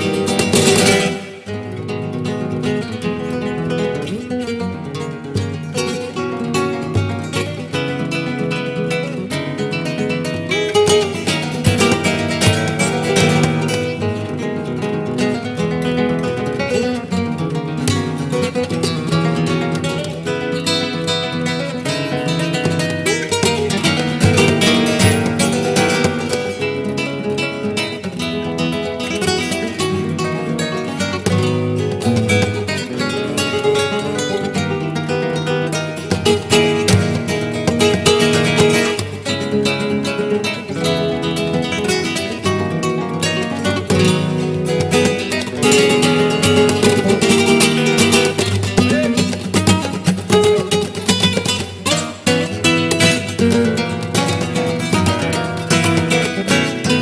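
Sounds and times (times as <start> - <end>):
flamenco guitar duet: 0.0 - 57.0.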